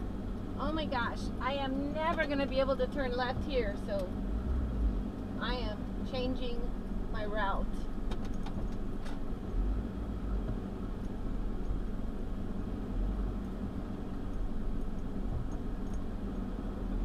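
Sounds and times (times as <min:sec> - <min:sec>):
air conditioning fan: 0:00.0 - 0:17.0
car engine hum: 0:00.0 - 0:17.0.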